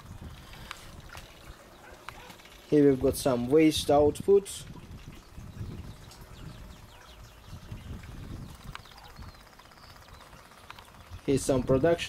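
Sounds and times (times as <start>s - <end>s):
low uneven rumble: 0.0s - 12.0s
small bird chirping: 5.2s - 11.2s.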